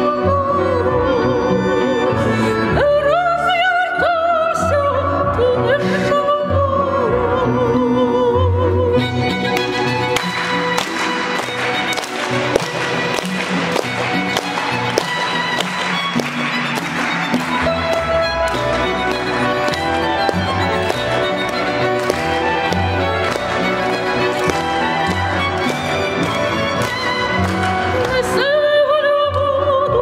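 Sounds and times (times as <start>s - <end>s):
cello: 0.0s - 30.0s
violin: 0.0s - 30.0s
hands clapping along: 9.4s - 28.4s.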